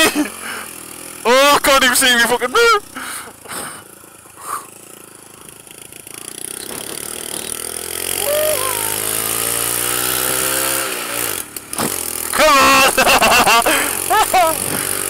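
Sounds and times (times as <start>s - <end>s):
motorcycle engine revving: 3.0s - 15.0s.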